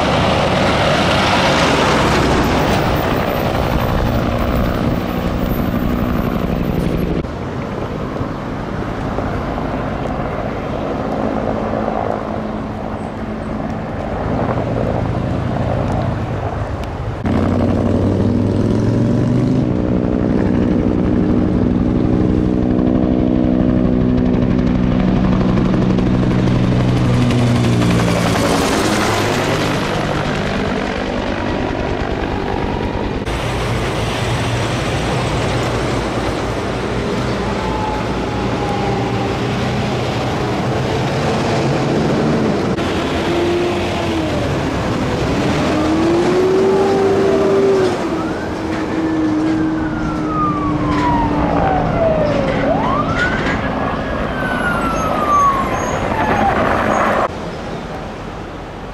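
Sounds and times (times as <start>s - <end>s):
helicopter rotor and engine: 0.0s - 58.9s.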